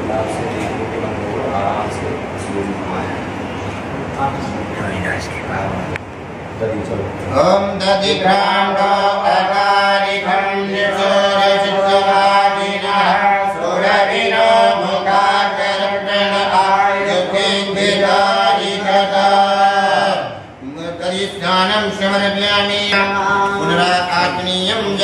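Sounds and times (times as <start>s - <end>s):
mantras chanted: 7.3s - 25.0s.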